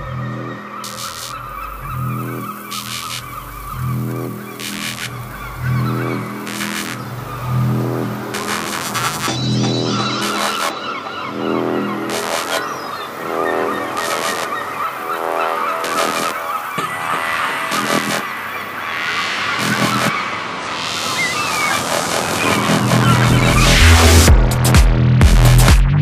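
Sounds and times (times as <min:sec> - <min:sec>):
gritty squealing synth: 0:00.0 - 0:24.3
noise swell: 0:00.0 - 0:24.7
sharp electronic hits: 0:00.8 - 0:25.7
deep bass: 0:03.2 - 0:10.3, 0:22.8 - 0:26.0.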